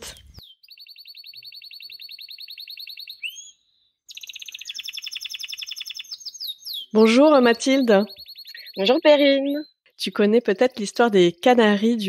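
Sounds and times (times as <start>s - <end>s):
canary trilling: 0.4s - 12.0s.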